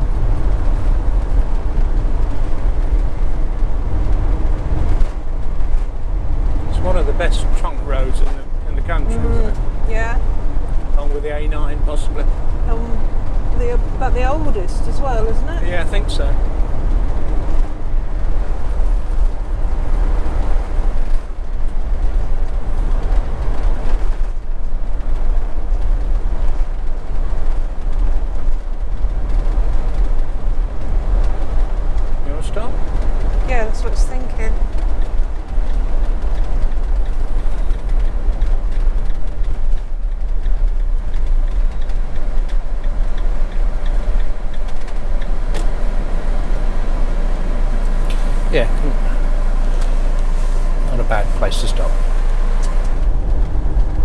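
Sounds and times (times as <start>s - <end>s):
deep constant rumble: 0.0s - 54.0s
road and engine noise: 0.0s - 54.0s.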